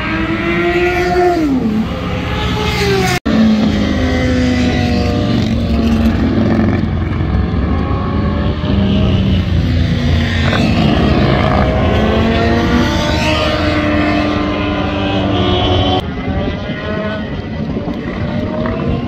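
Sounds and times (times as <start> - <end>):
motorcycle engines revving: 0.0 - 19.0.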